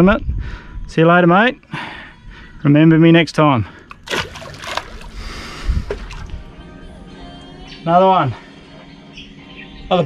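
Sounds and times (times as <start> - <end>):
fish splashing into water: 3.9 - 5.3, 5.9 - 6.4.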